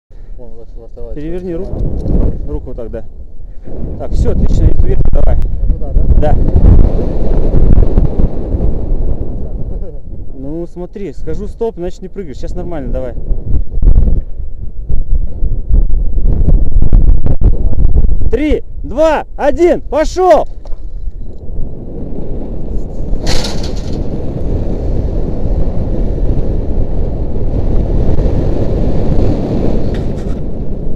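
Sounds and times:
wind buffeting microphone: 0.1s - 30.9s
burst of noise: 23.2s - 24.3s.

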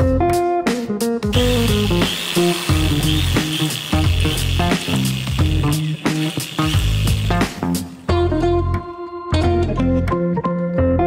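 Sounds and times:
background music with guitar: 0.0s - 11.0s
electric drill whirring grinder: 1.3s - 8.2s.

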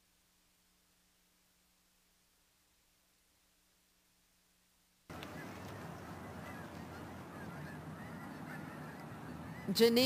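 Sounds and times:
low background hiss: 0.0s - 10.0s
geese honking: 5.1s - 10.0s.

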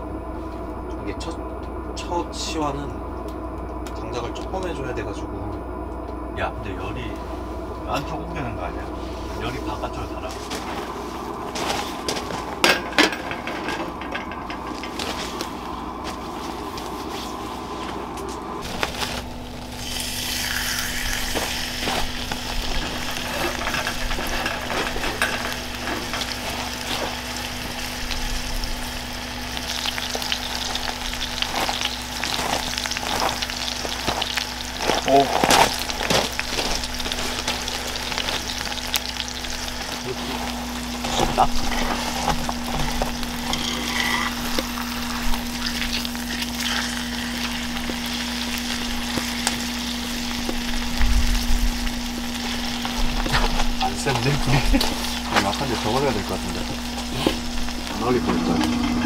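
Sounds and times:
steak sizzling in a skillet: 18.6s - 59.0s.

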